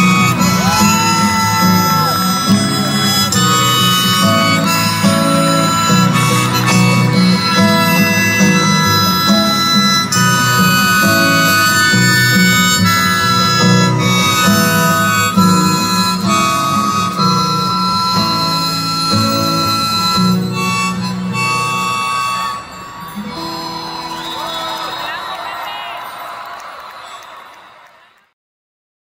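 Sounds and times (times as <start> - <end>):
audience cheering and whistling: 0.0 - 16.7, 21.5 - 28.3
strummed acoustic guitar: 0.0 - 25.2
harmonica wailing: 0.0 - 27.5.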